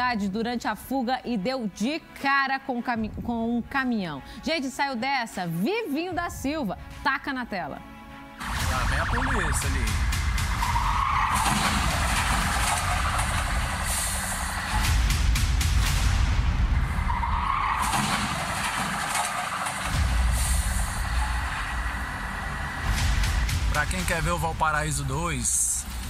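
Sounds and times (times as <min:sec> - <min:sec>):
road and wind noise: 0:08.4 - 0:23.7
tyres squealing: 0:10.3 - 0:13.6.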